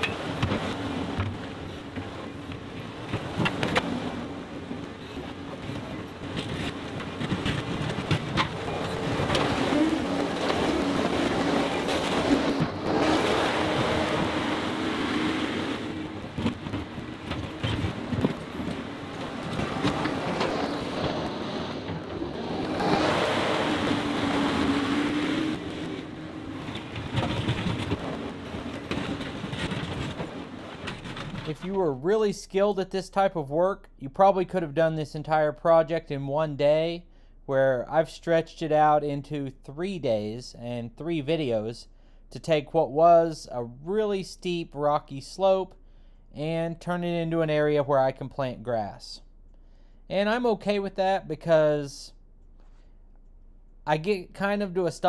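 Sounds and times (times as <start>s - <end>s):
knocks and clanks: 0.0s - 4.0s, 5.1s - 13.3s, 16.3s - 22.8s, 26.6s - 31.8s.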